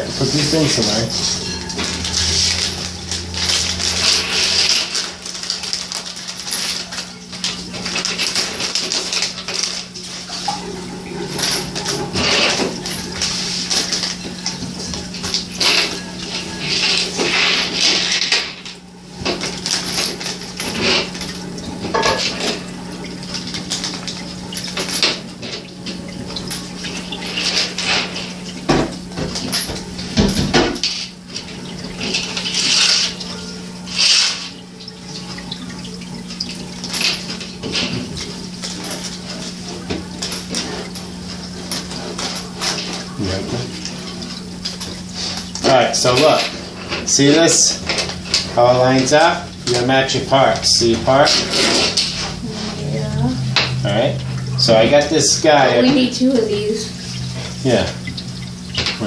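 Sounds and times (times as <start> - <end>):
steady low hum: 0.0 - 9.2
plastic bag crinkling: 0.3 - 10.4.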